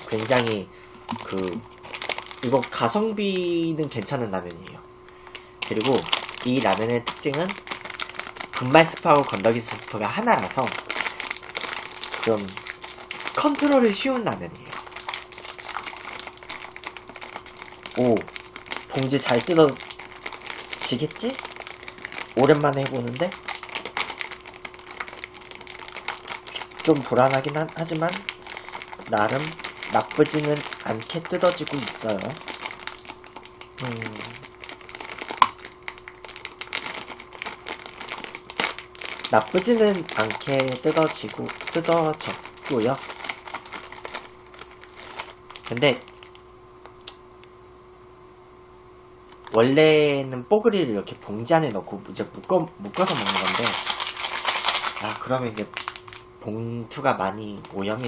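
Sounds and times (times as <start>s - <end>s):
plastic packet crinkling: 0.0s - 47.2s, 51.1s - 56.3s, 57.3s - 58.0s.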